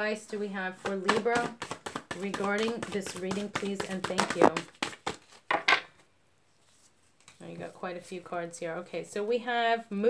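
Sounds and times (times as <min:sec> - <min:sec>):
cards being shuffled: 0:00.8 - 0:05.6.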